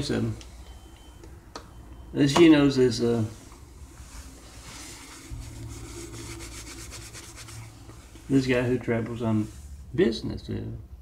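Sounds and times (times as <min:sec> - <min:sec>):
steady low hum: 0:00.0 - 0:11.0
scratchy rubbing on microphone: 0:03.9 - 0:09.8.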